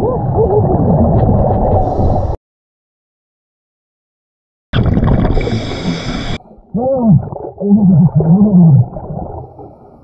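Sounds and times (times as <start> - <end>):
regulator breath and bubbles: 4.8 - 6.4
muffled diver voice underwater: 6.7 - 9.0.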